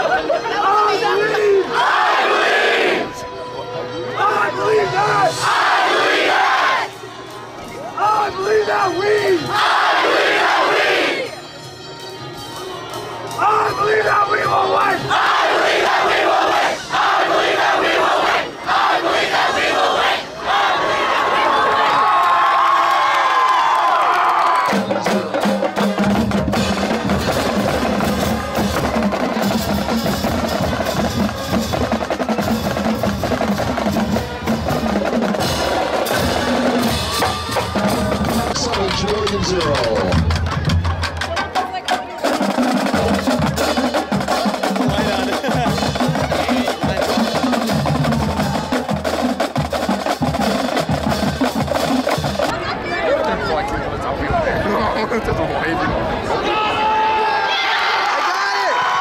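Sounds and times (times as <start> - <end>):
rapid snare drum rolls: 24.5 - 52.5.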